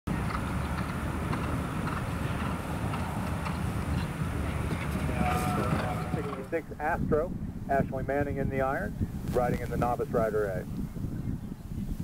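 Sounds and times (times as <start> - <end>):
horse hoofbeats on grass: 0.1 - 6.5
outdoor rumble on microphone: 0.1 - 12.0.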